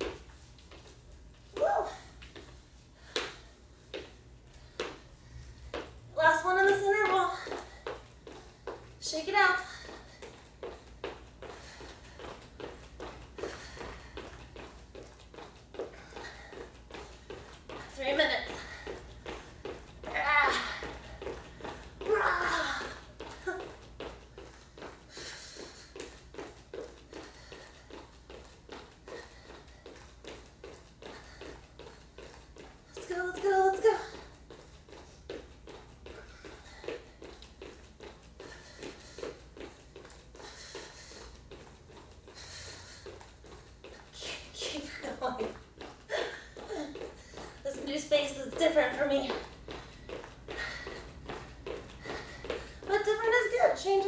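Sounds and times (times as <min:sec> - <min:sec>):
person exclaiming: 0:22.1 - 0:22.8.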